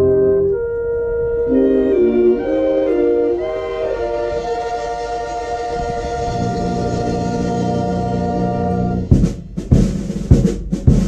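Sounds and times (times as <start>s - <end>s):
concert band holding a chord: 1.4s - 9.1s.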